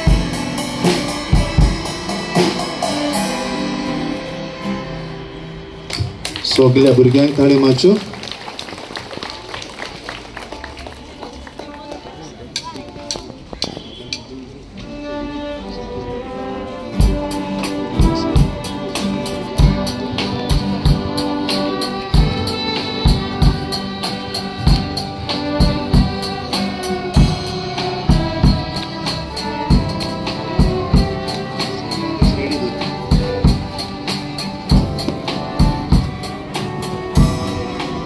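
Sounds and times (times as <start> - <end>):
drum kit beat: 0.0 - 3.8, 17.0 - 38.0
violins and guitars playing: 0.0 - 7.9, 11.6 - 38.0.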